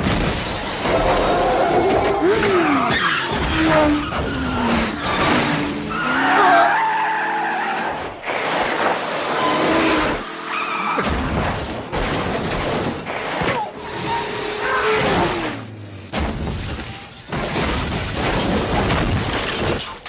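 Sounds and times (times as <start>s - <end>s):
car tyres squealing: 0.9s - 8.4s, 9.2s - 11.0s, 13.5s - 15.6s
glass breaking: 16.4s - 20.0s.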